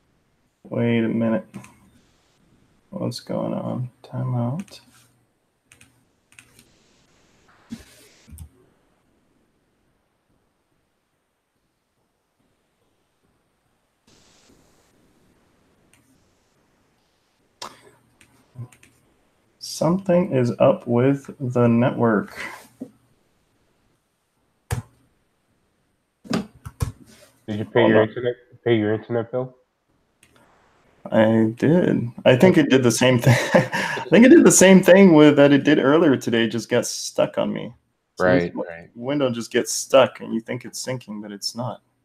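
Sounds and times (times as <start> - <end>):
man speaking: 0.7 - 1.7, 3.0 - 4.8, 19.6 - 22.7, 27.5 - 29.5, 31.1 - 41.8.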